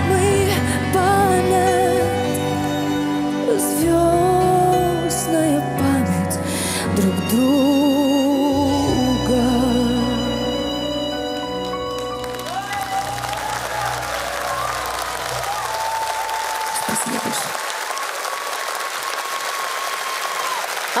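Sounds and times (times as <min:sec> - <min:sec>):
audience applause: 0:11.8 - 0:21.0.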